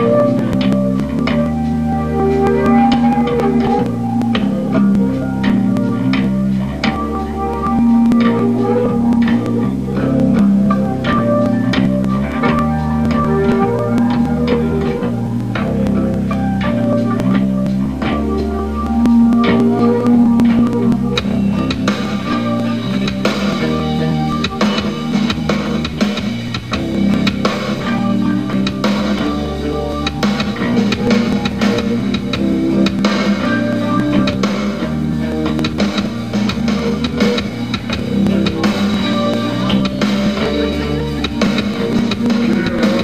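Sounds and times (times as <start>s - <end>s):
drums: 0.0s - 43.0s
electric guitar chords: 0.0s - 43.0s.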